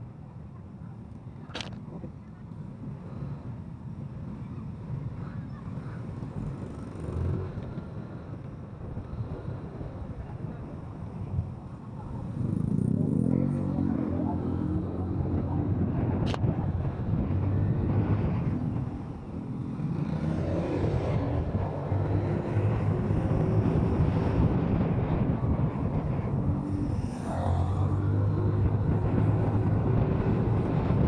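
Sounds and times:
road and wind noise: 0.0s - 31.0s
motorcycle engine accelerating: 12.0s - 31.0s.

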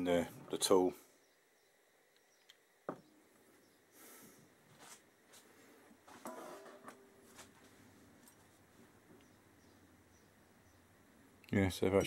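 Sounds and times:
tools and parts being handled: 6.1s - 8.6s.

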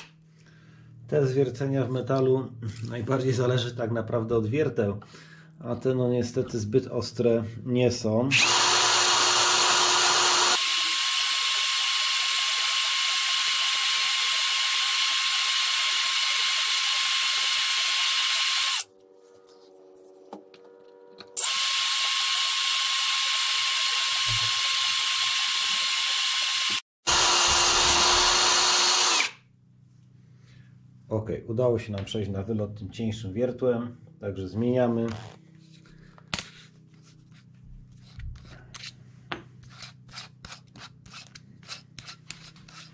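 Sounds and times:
cordless drill drilling into steel: 8.3s - 18.9s, 21.4s - 29.4s.

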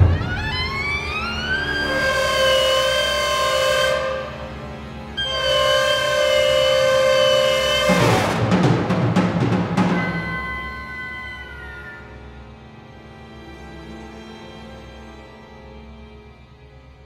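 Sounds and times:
heavy timpani strikes: 0.0s - 3.0s, 6.7s - 10.8s
solo clarinet: 0.0s - 4.5s, 5.2s - 8.2s, 9.9s - 12.4s
orchestral music: 0.0s - 17.0s.

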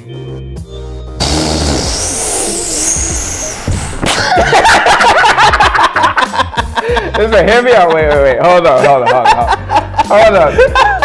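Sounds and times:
background music: 0.0s - 11.0s
loud hearty laughter: 4.0s - 11.0s.

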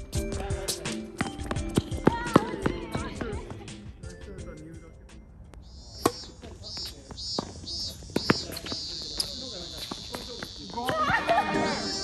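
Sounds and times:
players calling out: 5.9s - 12.0s
tennis ball hits: 6.0s - 11.4s.

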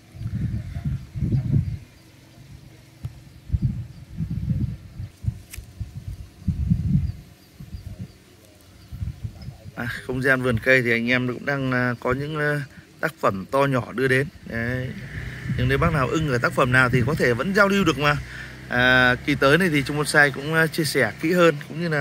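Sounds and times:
wind buffeting microphone: 0.0s - 20.3s.

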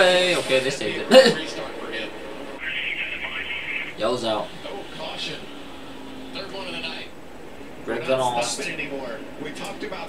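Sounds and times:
television broadcast audio: 0.0s - 10.0s.

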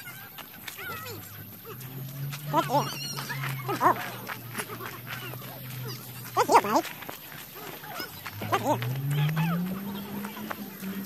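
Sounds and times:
high-pitched vocal cries: 2.5s - 6.9s, 7.6s - 8.8s.

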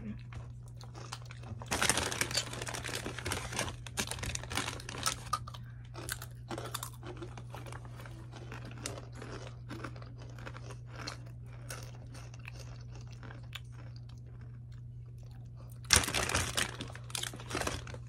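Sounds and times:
chips being chewed: 0.2s - 18.0s.

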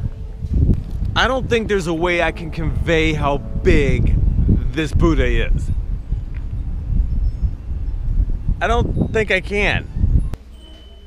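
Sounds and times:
wind buffeting microphone: 0.0s - 10.4s.

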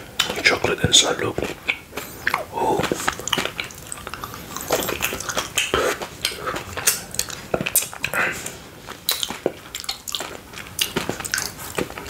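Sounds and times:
close chewing mouth sounds: 0.0s - 12.0s.

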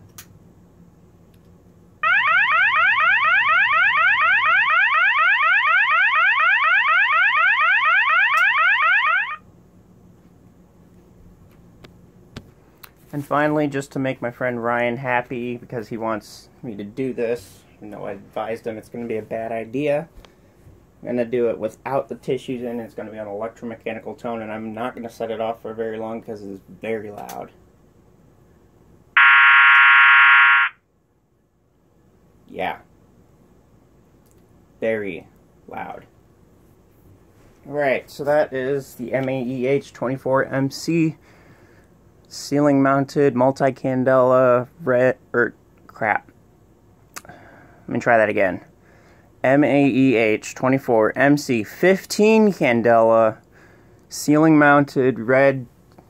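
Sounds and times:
alarm horn rapid whoops: 2.0s - 9.4s, 29.2s - 30.8s.

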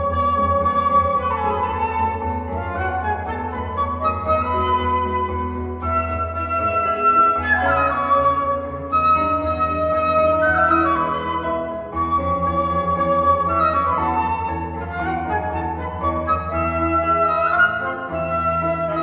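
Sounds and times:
digital piano accompaniment: 0.0s - 19.0s
flute duet: 0.0s - 19.0s.

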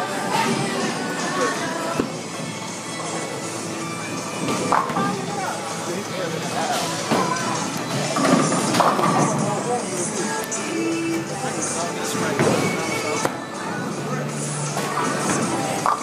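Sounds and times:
background music: 0.0s - 16.0s
people chatting: 4.9s - 7.8s, 8.9s - 13.3s.

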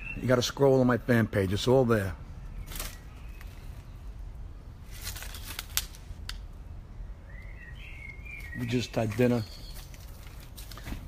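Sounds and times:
bird calling: 0.0s - 0.7s, 7.0s - 10.3s
steady low rumble: 0.8s - 8.6s.

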